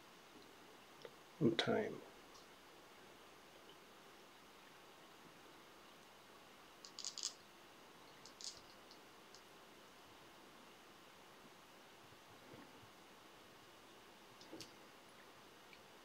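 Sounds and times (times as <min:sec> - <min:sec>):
faint high crackles of feather fibers: 0:06.8 - 0:09.5.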